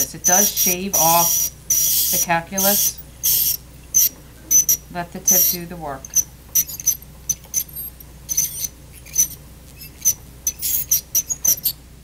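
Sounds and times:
scaler tip squeaking on plastic teeth: 0:00.0 - 0:11.8.

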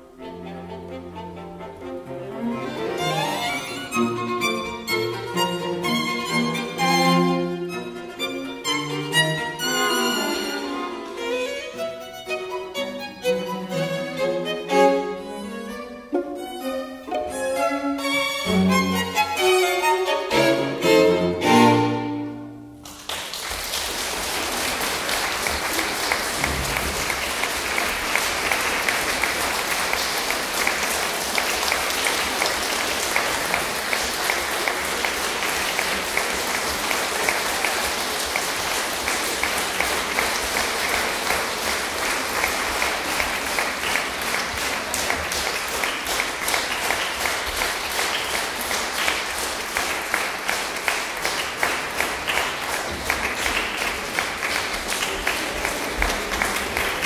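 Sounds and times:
audience applauding: 0:08.7 - 0:11.3, 0:22.8 - 0:57.0.

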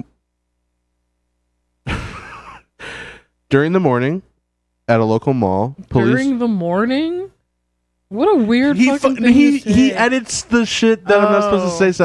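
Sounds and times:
person exhaling noisily: 0:02.8 - 0:03.3.

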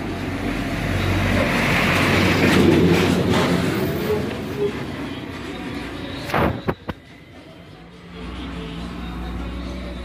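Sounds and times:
vehicle passing by: 0:00.1 - 0:04.4.

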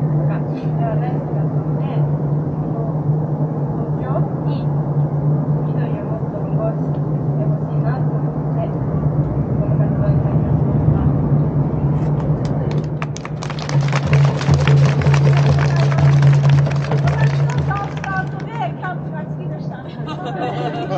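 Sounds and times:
low steady hum: 0:00.0 - 0:20.9
crowd clapping: 0:12.2 - 0:18.6.

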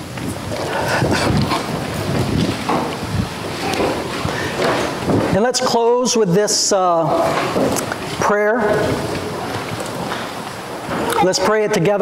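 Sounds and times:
rustle and shuffle of people standing: 0:00.0 - 0:12.0.

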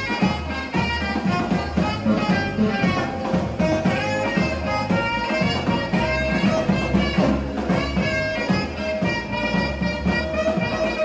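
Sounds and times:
live band music over loudspeakers: 0:00.0 - 0:11.0.

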